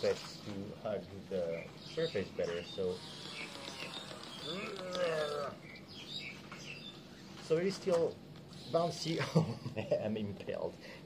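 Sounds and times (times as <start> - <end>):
faint bird chirps: 1.3 - 7.6.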